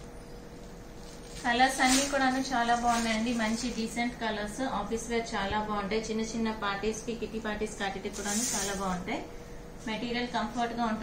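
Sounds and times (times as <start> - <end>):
woman talking: 1.4 - 11.0.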